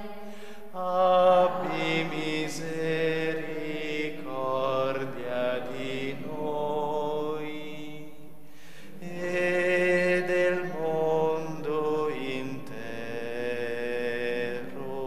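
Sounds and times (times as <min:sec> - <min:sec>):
person chanting slowly: 0:00.0 - 0:08.3, 0:08.9 - 0:15.0.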